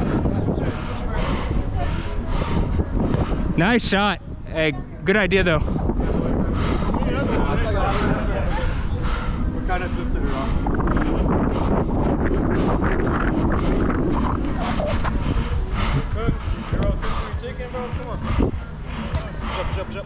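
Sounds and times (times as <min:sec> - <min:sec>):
wind rumbling on microphone: 0:00.0 - 0:20.0.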